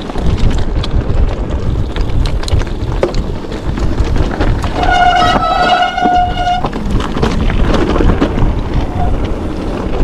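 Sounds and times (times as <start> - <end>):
tyres rumbling on trail: 0.0 - 10.0
wind on microphone: 0.0 - 10.0
bike disc brake squealing: 4.7 - 6.8, 8.8 - 9.3.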